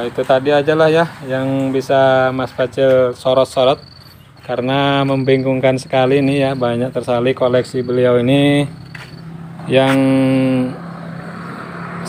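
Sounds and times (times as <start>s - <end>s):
vehicle engine hum passing: 0.0s - 12.0s
man calling out: 9.6s - 10.8s.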